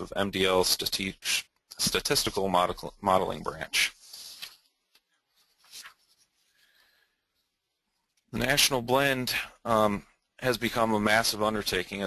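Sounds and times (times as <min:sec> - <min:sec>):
faint hiss: 0:00.5 - 0:11.8.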